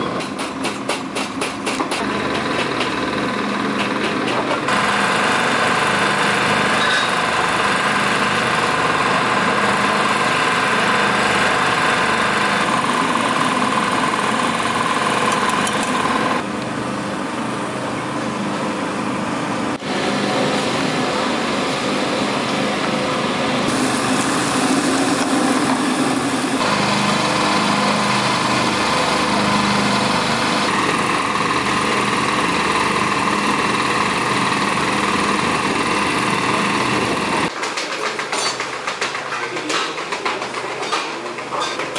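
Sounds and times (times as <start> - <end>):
motor drone: 2.0 - 37.5.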